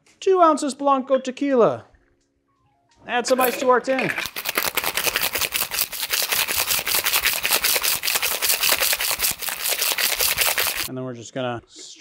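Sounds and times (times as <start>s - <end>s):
ice rattling in cocktail shaker: 3.2s - 10.9s.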